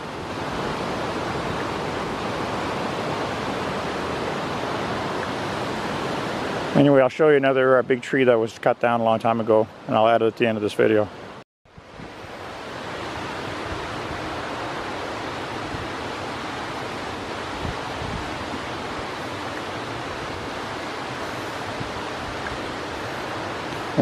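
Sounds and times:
flowing water rushing: 0.0s - 24.0s.

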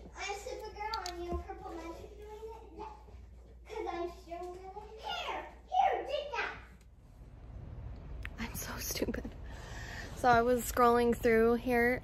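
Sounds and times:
low steady rumble: 4.1s - 12.0s.

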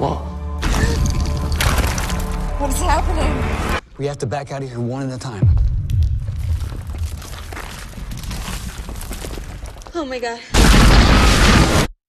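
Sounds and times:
stone floor cracking and crunching: 0.6s - 2.8s, 5.5s - 11.8s.

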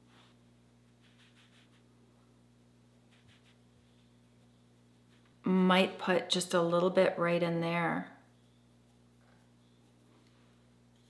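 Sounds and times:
makeup brush swishing over skin: 0.0s - 1.9s
steady low hum: 0.0s - 11.0s.

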